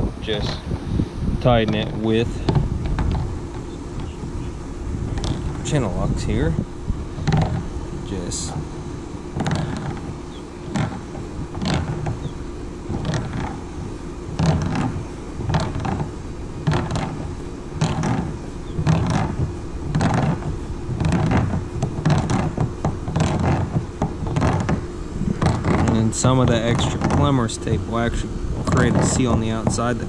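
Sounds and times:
plastic fitting creaking: 1.6 - 4.2, 5.1 - 5.6, 7.2 - 7.7, 9.4 - 10.1, 10.7 - 12.3, 12.9 - 13.6, 14.4 - 16.1, 16.7 - 27.4.

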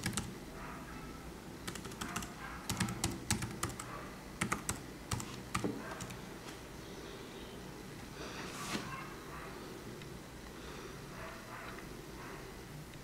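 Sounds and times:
laptop keyboard typing: 0.0 - 0.4, 1.6 - 6.2.

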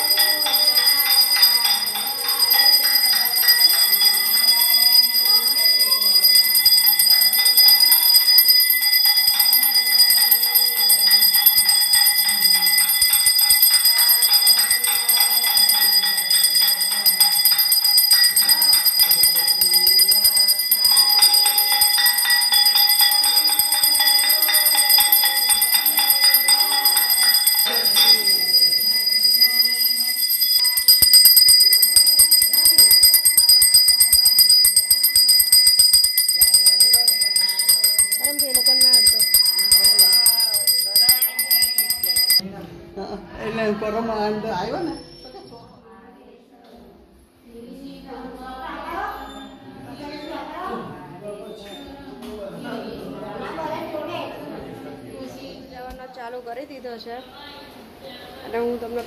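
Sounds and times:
temple bell ringing rapidly: 0.0 - 42.4.

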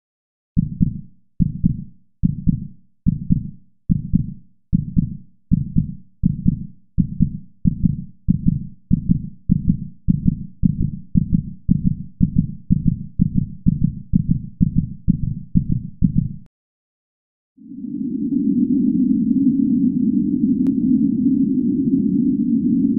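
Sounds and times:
heartbeat double thumps: 0.6 - 16.5.

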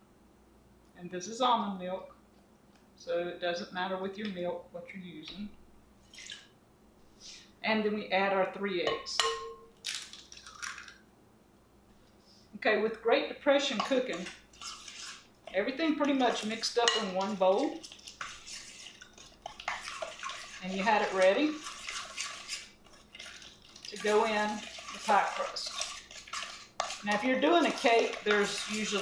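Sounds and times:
egg cracking on glass bowl: 9.2 - 11.0
soft wet squish of egg: 9.8 - 11.0, 17.2 - 29.0
utensil scraping glass bowl: 13.7 - 29.0.

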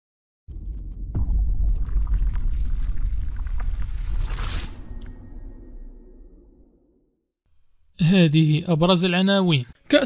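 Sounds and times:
deep bass rumble: 1.2 - 6.9
scattered crackles: 1.3 - 5.2.

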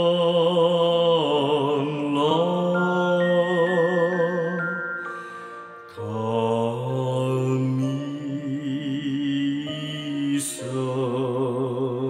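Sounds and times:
slow devotional singing: 0.0 - 12.0
bell-like chime notes: 1.7 - 9.1.

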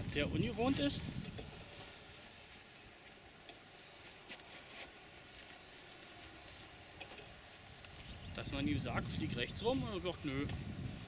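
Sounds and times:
distant drone motors humming: 0.0 - 11.0.

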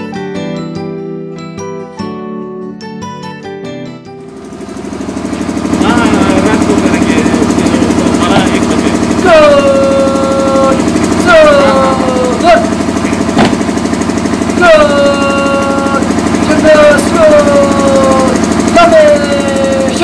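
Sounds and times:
generator throbbing: 4.1 - 20.0
drill commander shouting commands: 5.8 - 13.6, 14.4 - 20.0
sharp knock: 13.3 - 13.6.

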